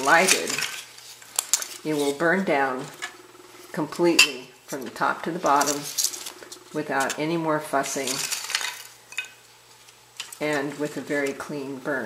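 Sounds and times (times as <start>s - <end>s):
hands rustling kindling and paper: 0.0s - 2.4s, 4.8s - 7.2s.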